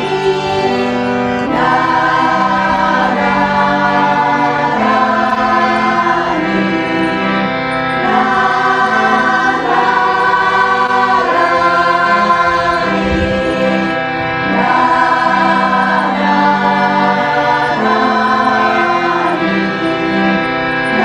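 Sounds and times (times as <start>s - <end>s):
group of voices chanting: 0.0s - 21.0s
harmonium chords: 0.0s - 21.0s.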